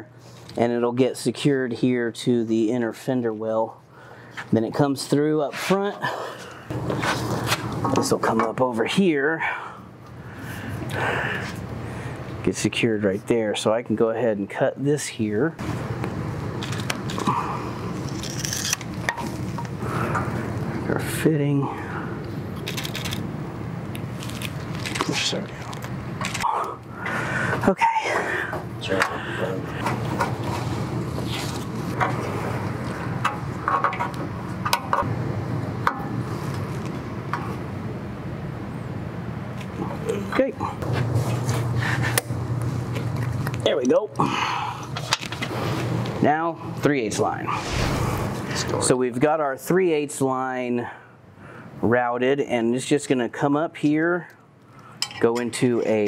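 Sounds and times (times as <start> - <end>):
steady low hum: 0.0 - 52.0
steady background noise: 0.0 - 56.0.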